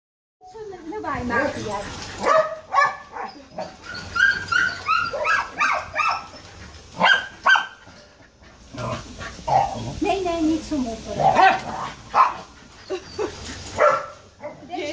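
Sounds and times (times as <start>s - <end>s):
small dogs yipping: 1.3s - 7.8s, 11.4s - 14.7s.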